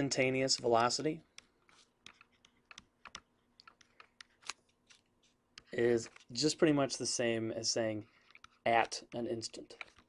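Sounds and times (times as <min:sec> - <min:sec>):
stylus tapping on tablet screen: 0:00.5 - 0:06.2.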